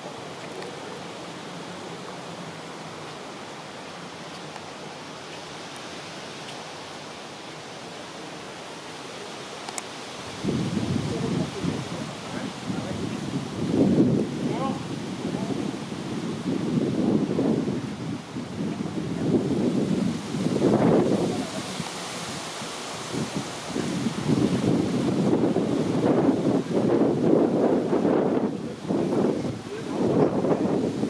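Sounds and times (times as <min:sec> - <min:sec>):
wind buffeting microphone: 0:10.1 - 0:31.0.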